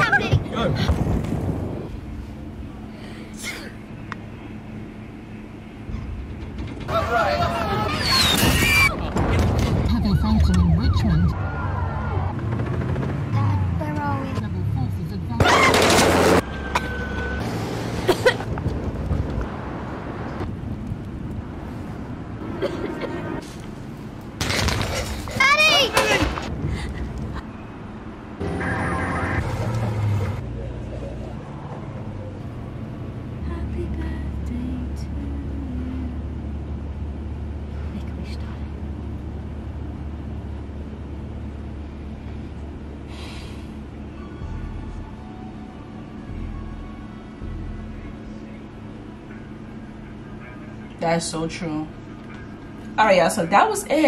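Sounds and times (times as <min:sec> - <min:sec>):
sirens: 0:09.7 - 0:12.4, 0:28.4 - 0:29.6.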